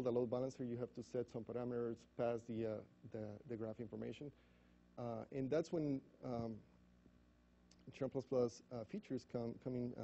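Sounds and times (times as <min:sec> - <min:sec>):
man speaking into microphone: 0:00.0 - 0:04.4, 0:05.0 - 0:06.7, 0:07.7 - 0:10.0.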